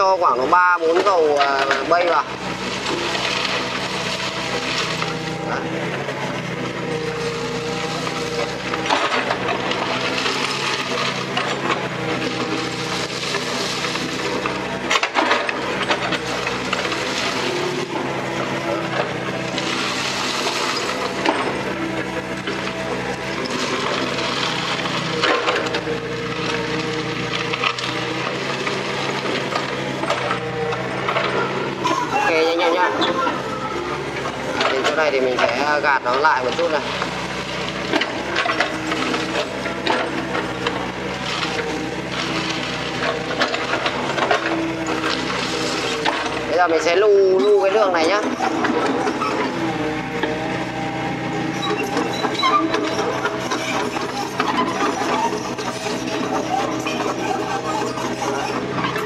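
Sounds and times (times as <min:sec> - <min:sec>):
excavator diesel engine under load: 0:00.0 - 0:59.0
bucket scraping crushed stone: 0:51.8 - 0:59.0.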